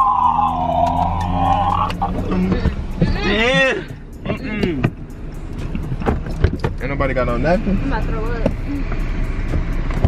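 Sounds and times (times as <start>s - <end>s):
car cabin engine rumble: 0.0s - 10.0s.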